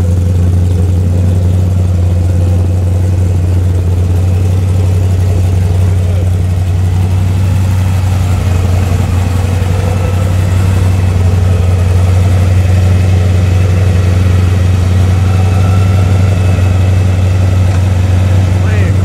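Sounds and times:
engine idling with deep hum: 0.0 - 19.0.

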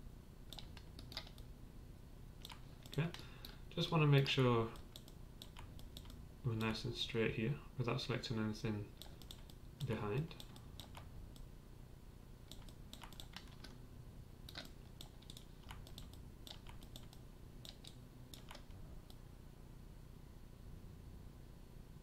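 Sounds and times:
low steady hum: 0.0 - 22.0
computer keys and mouse clicking: 0.5 - 1.5, 2.4 - 3.6, 4.7 - 6.8, 8.9 - 11.5, 12.5 - 13.8, 14.4 - 19.2.

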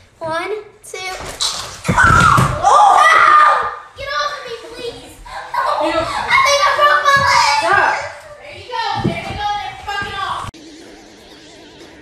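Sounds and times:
voices yelling and shrieking: 1.9 - 3.9, 5.3 - 10.5.

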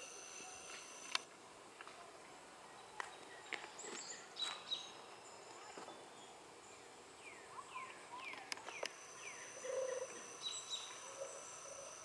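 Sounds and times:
thin high buzz: 0.0 - 1.2, 8.8 - 12.0
sharp clicks: 0.3 - 1.3
birds whistling calls: 7.3 - 12.0.

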